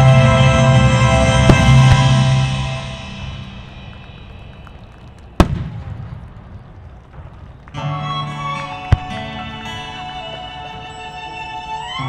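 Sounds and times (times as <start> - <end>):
music: 0.0 - 5.3, 7.7 - 12.0.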